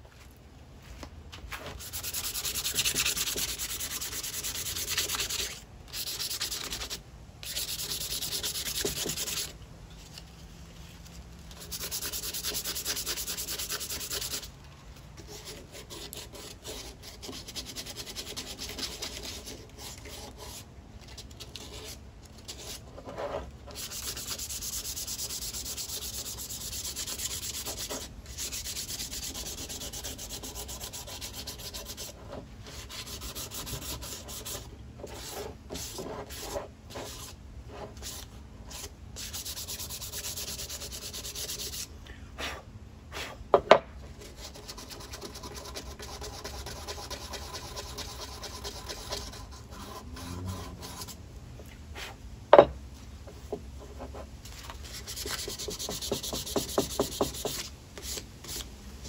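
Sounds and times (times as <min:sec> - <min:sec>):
sandpaper rasping on wood: 0:01.8 - 0:09.5, 0:11.5 - 0:14.5, 0:15.3 - 0:20.6, 0:21.6 - 0:41.9, 0:44.2 - 0:51.2, 0:54.8 - 0:58.6.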